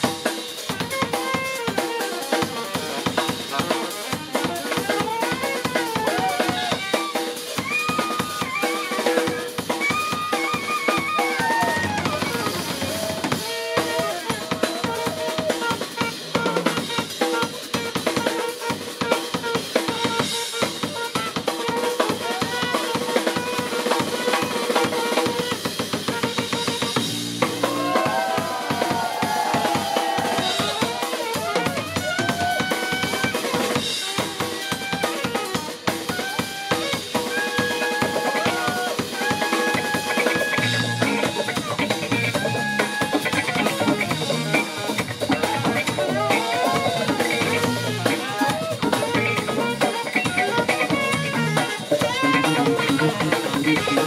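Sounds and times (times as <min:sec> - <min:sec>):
drum kit beat: 0:00.0 - 0:54.0
electric guitar: 0:00.0 - 0:54.0
saxophone lines: 0:00.7 - 0:54.0.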